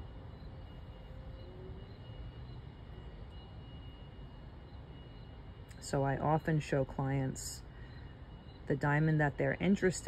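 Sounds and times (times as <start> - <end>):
faint high-pitched tone: 0.0 - 10.0.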